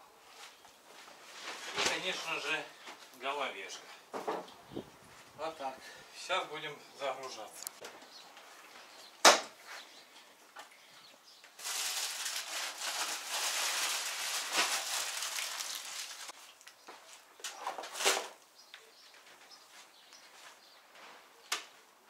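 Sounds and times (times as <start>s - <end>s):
rustling: 0.3s - 3.1s, 11.5s - 18.4s.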